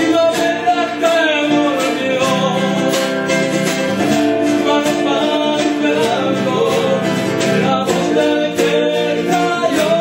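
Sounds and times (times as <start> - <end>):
song with voices singing: 0.0 - 10.0.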